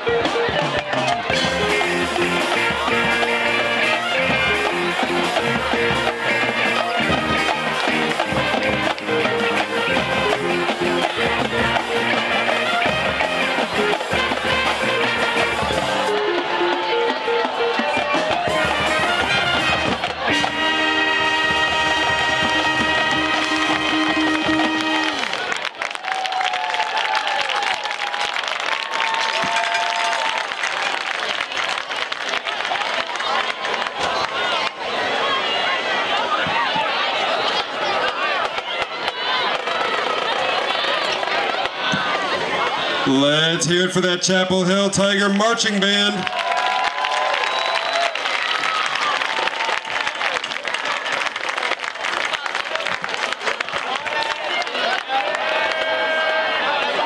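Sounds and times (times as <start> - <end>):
crowd cheering and applauding: 0.0 - 57.0
marching band held final chord: 1.2 - 25.5.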